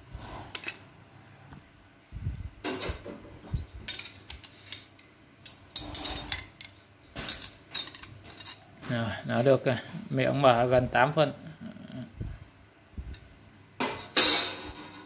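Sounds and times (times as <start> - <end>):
metal clinks and knocks of a wrench: 3.5 - 8.6.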